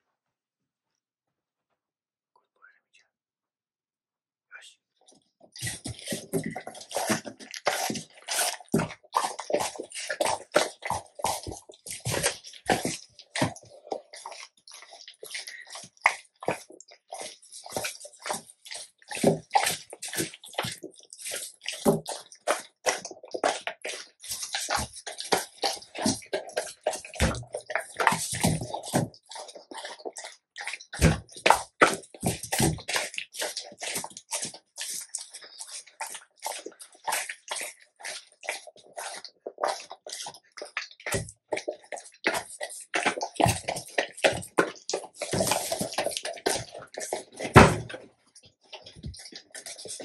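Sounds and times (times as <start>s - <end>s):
dog chewing and licking meat: 5.5s - 50.0s.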